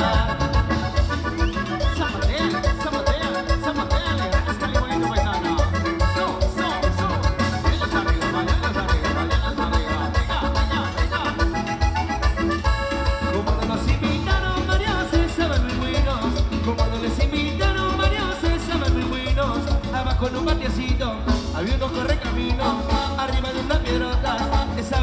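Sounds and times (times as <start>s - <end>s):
dance band playing: 0.0s - 25.0s.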